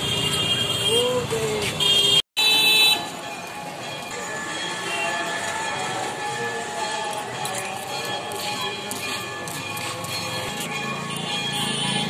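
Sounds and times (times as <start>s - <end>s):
vehicle horns honking loudly: 0.0s - 3.3s, 11.0s - 12.0s
passing traffic: 0.0s - 12.0s.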